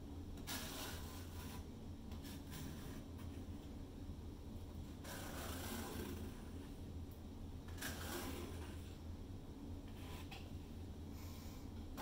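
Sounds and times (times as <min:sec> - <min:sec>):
steady low hum: 0:00.0 - 0:12.0
soft scraping of paint: 0:00.4 - 0:03.7, 0:04.8 - 0:06.8, 0:07.7 - 0:09.0, 0:09.8 - 0:10.7.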